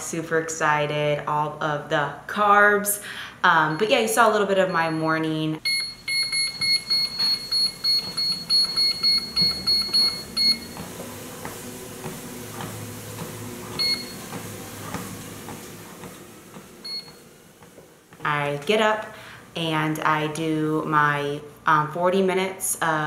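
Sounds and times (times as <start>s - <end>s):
treadmill console beeping: 3.6s - 19.1s
treadmill running: 5.6s - 21.0s
footsteps on treadmill belt: 5.7s - 19.2s.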